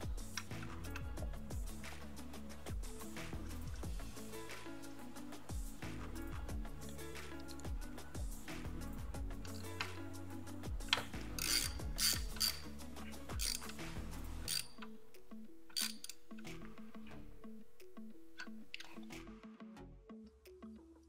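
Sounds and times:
background music with beat: 0.0 - 21.0
hand ratchet clicking: 10.8 - 13.8, 14.5 - 14.8, 15.7 - 16.2.

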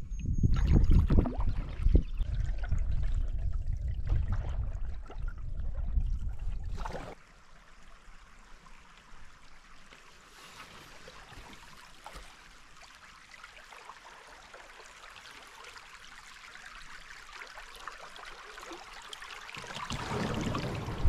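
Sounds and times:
stream water trickling over rocks: 0.3 - 21.0.

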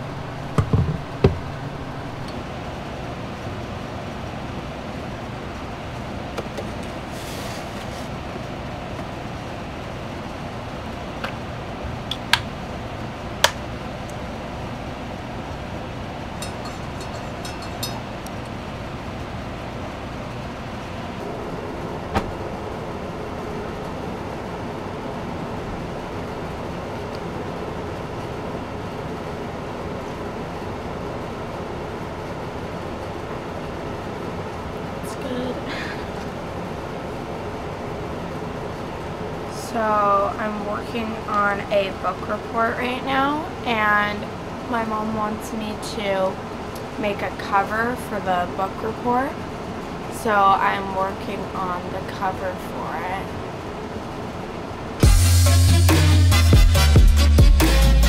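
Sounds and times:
low rumbling background: 0.0 - 7.2, 8.2 - 29.3
spoon clinking in ceramic mug: 16.4 - 18.1.

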